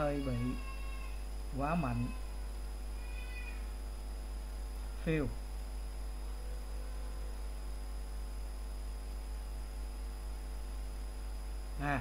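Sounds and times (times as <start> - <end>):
faint high whine: 0.0 - 12.0
low electrical hum: 0.0 - 12.0.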